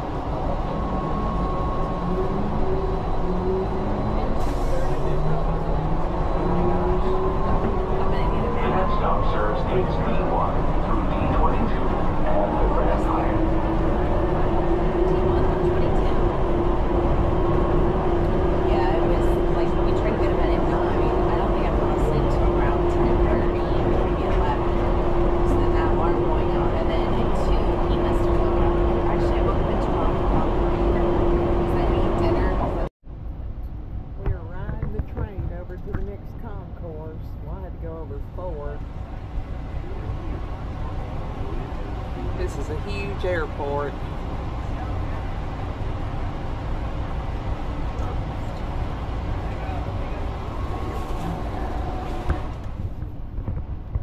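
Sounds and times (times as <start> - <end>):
train running noise: 0.0 - 54.0.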